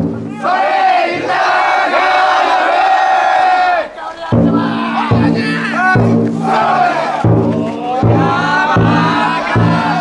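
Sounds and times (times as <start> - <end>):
deep taiko drum strike: 0.0 - 0.4, 4.3 - 10.0
men shouting a long call: 0.3 - 10.0.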